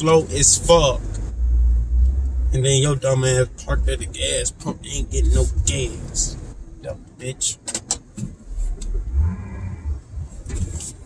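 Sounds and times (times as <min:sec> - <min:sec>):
car engine rumble: 0:00.0 - 0:11.0
road noise: 0:00.0 - 0:11.0.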